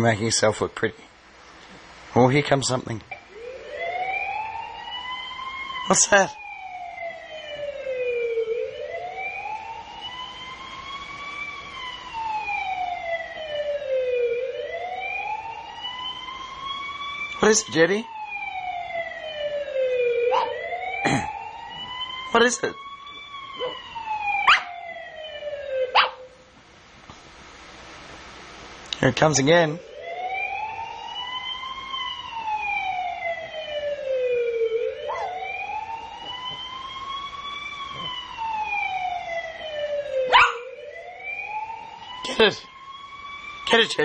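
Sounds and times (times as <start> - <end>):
siren wailing: 3.1 - 26.5, 29.2 - 44.0.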